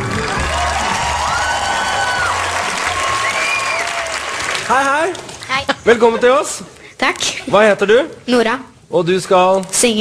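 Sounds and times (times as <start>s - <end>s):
audience applauding and cheering: 0.0s - 6.2s
background music: 0.0s - 6.6s.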